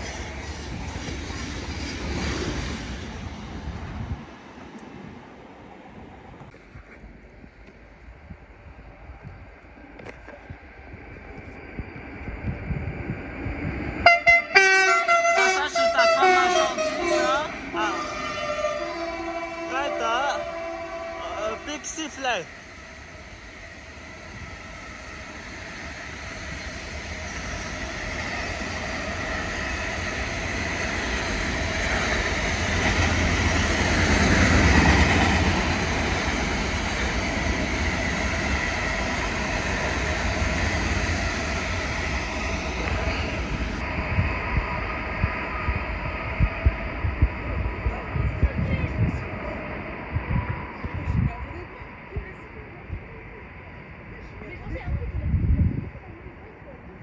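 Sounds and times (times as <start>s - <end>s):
freight train rumble and rail hiss: 0.0s - 57.0s.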